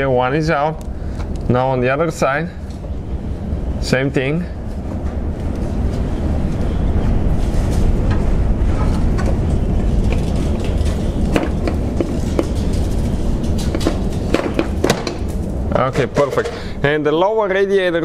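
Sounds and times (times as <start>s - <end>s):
steady low rumble: 0.0s - 18.0s
metal part scraping and rattling: 7.5s - 15.5s
sharp clicks and knocks: 8.0s - 16.6s.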